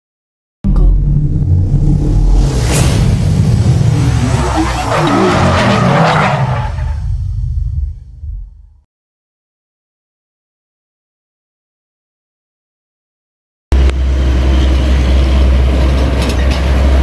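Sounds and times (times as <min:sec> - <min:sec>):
heavy engine-like rumble: 0:00.7 - 0:08.8, 0:13.7 - 0:17.0
sharp whoosh: 0:01.0 - 0:08.1
bright rush: 0:01.4 - 0:07.0.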